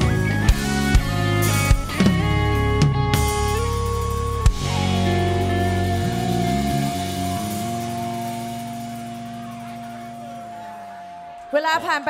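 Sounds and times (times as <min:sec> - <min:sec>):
rock band final chord ringing: 0:00.0 - 0:11.3.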